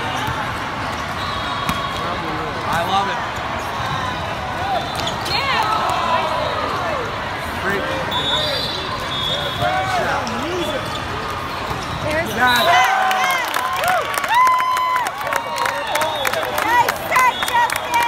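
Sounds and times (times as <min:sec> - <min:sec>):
volleyball hits: 0:00.1 - 0:04.0
sneakers squeaking on floor: 0:08.1 - 0:12.6.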